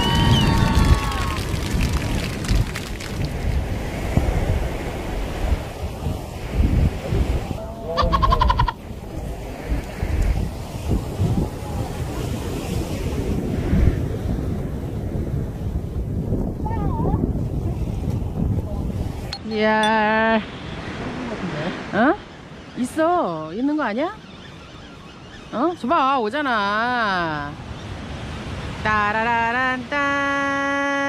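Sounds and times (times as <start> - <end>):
wind buffeting microphone: 0.0 - 24.2
sea waves washing: 0.0 - 31.0
faint voice calling: 7.6 - 8.8.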